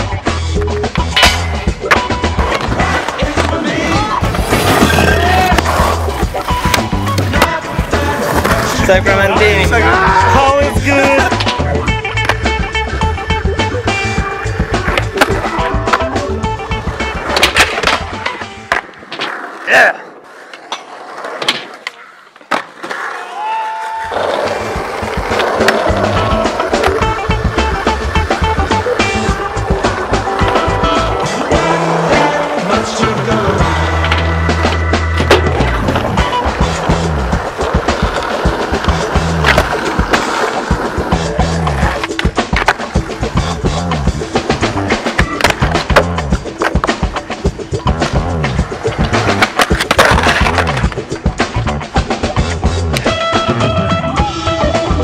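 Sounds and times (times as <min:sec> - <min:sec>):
skateboard wheels rolling on concrete: 0:00.0 - 0:55.0
skateboard clacks: 0:00.2 - 0:53.3
music with heavy bass beat: 0:25.9 - 0:39.6, 0:40.7 - 0:49.4.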